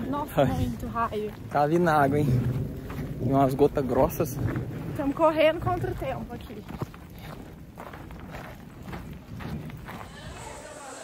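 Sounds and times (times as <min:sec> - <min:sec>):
hurried walking footsteps: 0:00.0 - 0:11.0
wind rumbling on microphone: 0:00.0 - 0:11.0.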